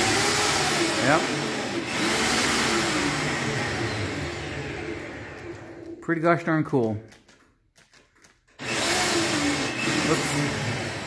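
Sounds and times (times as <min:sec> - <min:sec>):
electric hoist motor humming: 0:00.0 - 0:06.0, 0:08.6 - 0:11.0.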